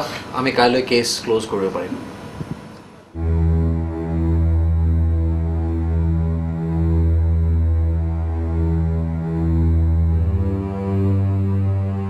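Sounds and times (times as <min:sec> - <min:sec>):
deep sustained bass drone: 0:03.2 - 0:12.0.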